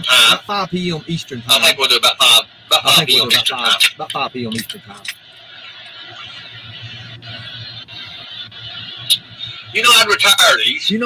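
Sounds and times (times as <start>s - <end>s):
air hissing in car cabin: 0.0s - 11.0s.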